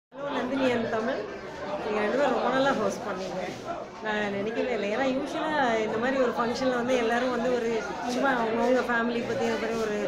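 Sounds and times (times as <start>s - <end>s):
woman speaking: 1.9s - 10.0s.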